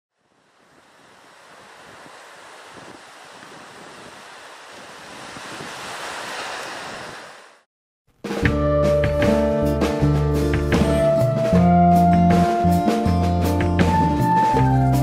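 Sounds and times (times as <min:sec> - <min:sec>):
ocean surf washing onto shore: 0:00.2 - 0:07.7.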